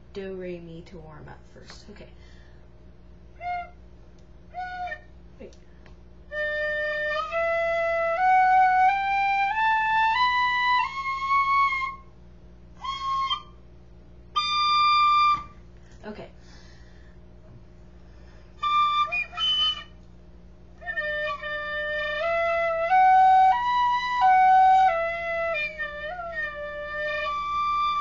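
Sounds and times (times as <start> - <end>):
tin whistle notes: 3.4 - 3.8, 4.5 - 5.2, 6.3 - 12.1, 12.8 - 13.7, 14.3 - 15.6, 18.6 - 20.0.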